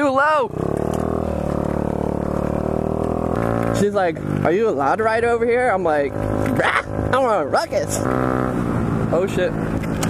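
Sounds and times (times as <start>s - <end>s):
scooter engine droning: 0.5s - 10.0s.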